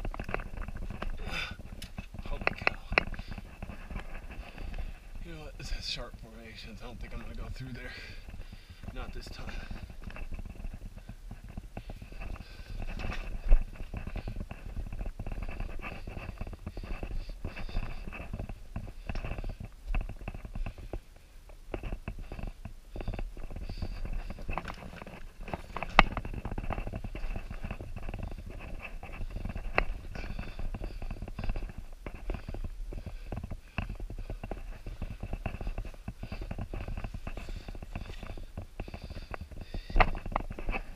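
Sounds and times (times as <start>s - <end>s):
clothes and gear rustling: 0.0s - 40.9s.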